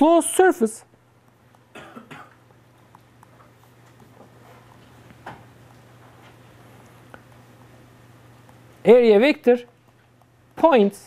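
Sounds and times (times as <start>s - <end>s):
steady low hum: 0.0s - 11.0s
person coughing: 1.7s - 2.4s.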